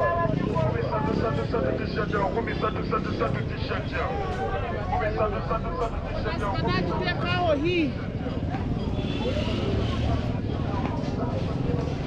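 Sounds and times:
low traffic rumble: 0.0s - 12.0s
people talking overlapping: 0.0s - 12.0s.

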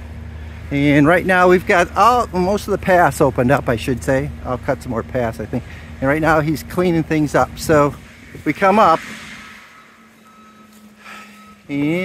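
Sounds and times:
distant mulcher hum: 0.0s - 12.0s
backup alarm tone: 9.0s - 12.0s.

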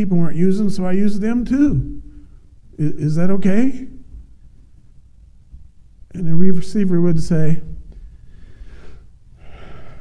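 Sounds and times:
man breathing into microphone: 8.0s - 10.0s.

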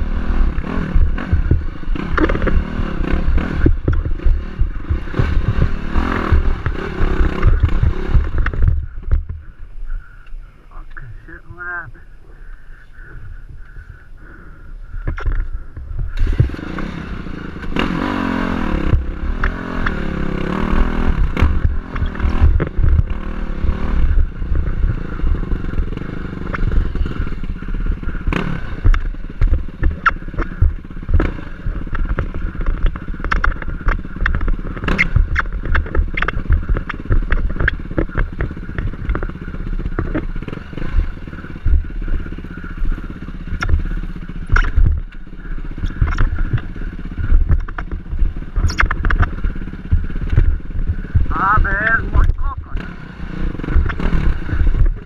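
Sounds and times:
dirt bike engine revving: 0.0s - 55.0s
knocks and clatter on rocks: 47.3s - 48.0s.

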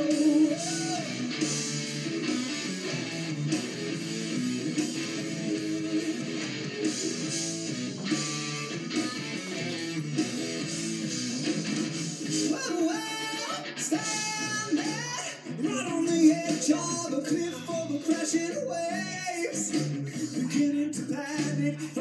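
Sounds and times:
bass guitar: 0.0s - 22.0s
drums: 0.0s - 22.0s
electric guitar: 0.0s - 22.0s.

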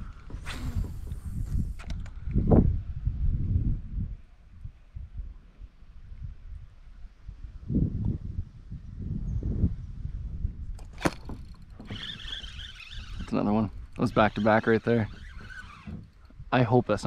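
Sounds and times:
fishing reel buzzing: 0.3s - 1.9s, 10.9s - 16.4s.

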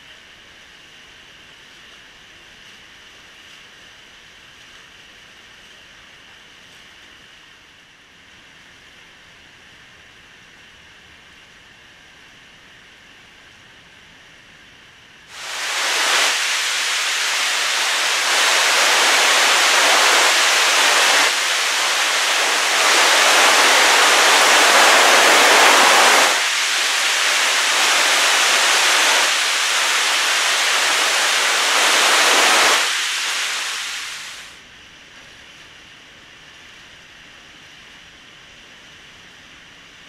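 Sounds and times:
waterfall rushing water: 15.3s - 34.6s.

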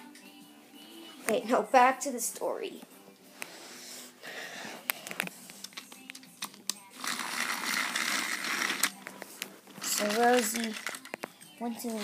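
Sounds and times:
toy train motor whirring: 7.0s - 9.0s, 9.8s - 11.1s.

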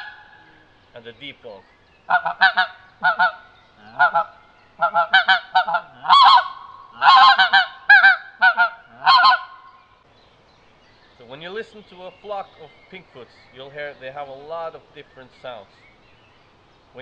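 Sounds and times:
goose call honks and yelps: 0.0s - 0.6s, 2.1s - 9.7s.

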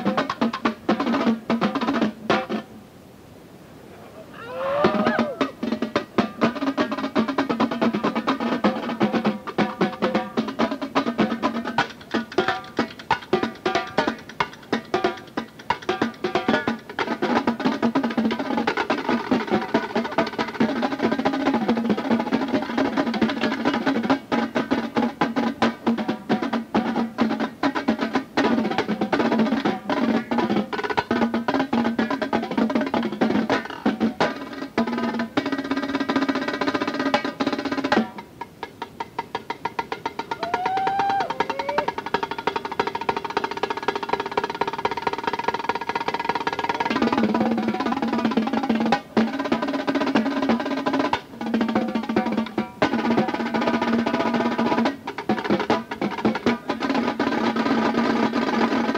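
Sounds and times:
tenor drums playing rolls: 0.0s - 58.9s.

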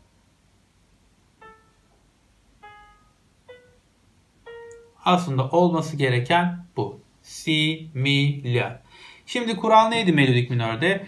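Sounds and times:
faint piano notes: 1.4s - 5.9s.

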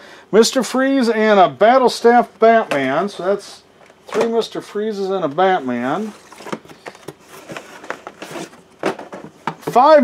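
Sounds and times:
plastic packs scraping cardboard: 5.4s - 8.7s.

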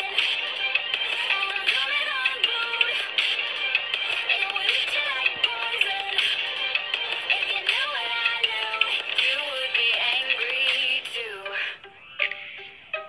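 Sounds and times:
song with sung vocals: 0.0s - 13.0s.

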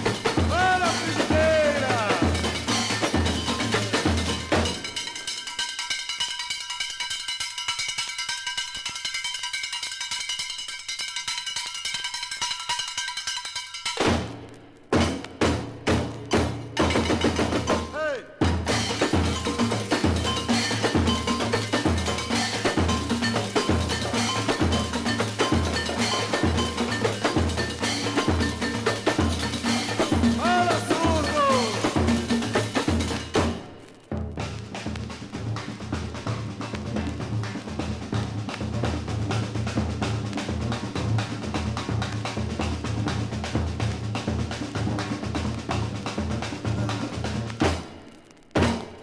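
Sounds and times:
deep drum beat: 0.0s - 5.0s, 15.0s - 47.8s
samba percussion: 0.0s - 49.0s.

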